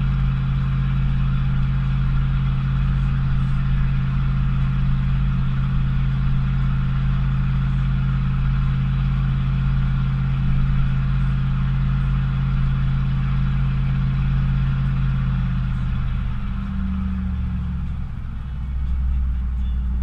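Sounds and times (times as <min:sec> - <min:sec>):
pickup engine droning: 0:00.0 - 0:20.0
road rumble: 0:00.0 - 0:20.0.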